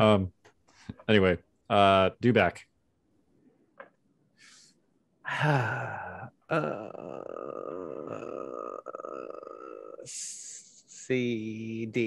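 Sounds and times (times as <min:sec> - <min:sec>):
man humming in hesitation: 0:05.3 - 0:10.7.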